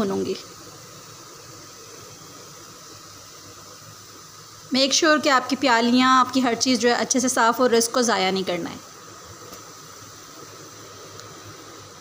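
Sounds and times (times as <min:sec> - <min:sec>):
chicken frying in a pan: 0:00.0 - 0:12.0.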